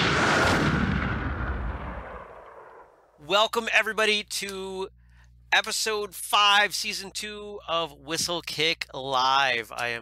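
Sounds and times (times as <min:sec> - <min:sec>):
booming crashing intro hit: 0:00.0 - 0:02.9
rush of noise over low rumble: 0:00.0 - 0:03.2.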